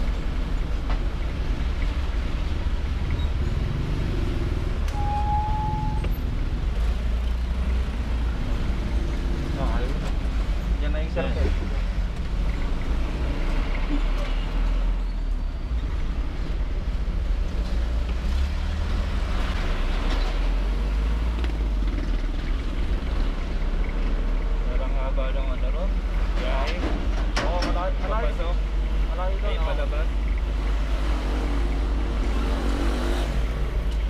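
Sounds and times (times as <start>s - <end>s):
vehicle rumbling on the road: 0.0s - 34.0s.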